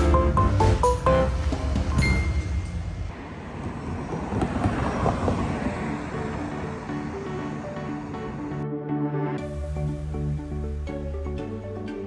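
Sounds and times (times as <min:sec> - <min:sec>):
traffic rush with low rumble: 0:00.0 - 0:12.0
vehicle passing: 0:00.6 - 0:08.6.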